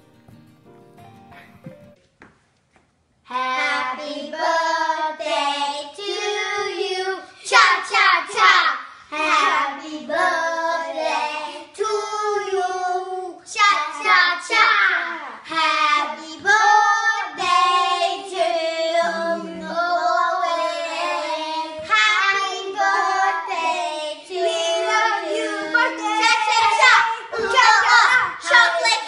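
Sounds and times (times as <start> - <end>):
children singing: 3.3 - 8.6, 9.2 - 29.0.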